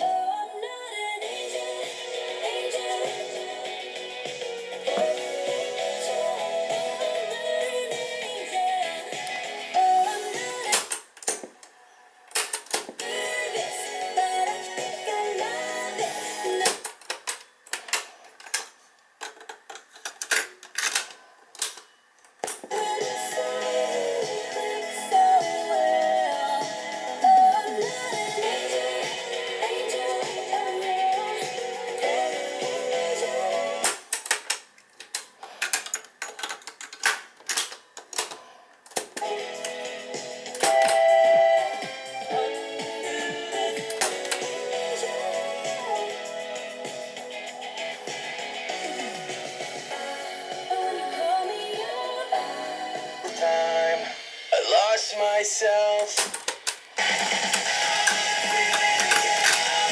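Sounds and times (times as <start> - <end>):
music playing: 0.0 - 11.0, 13.0 - 16.9, 22.7 - 34.0, 39.2 - 59.9.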